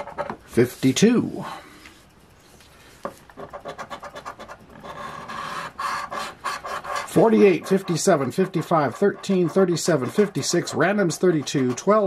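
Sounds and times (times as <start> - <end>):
coin scratching lottery ticket: 3.4 - 12.0.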